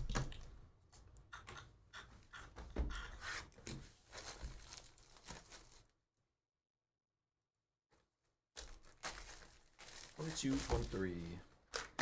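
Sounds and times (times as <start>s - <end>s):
cellophane crinkling and tearing: 4.0s - 5.9s, 8.6s - 12.0s.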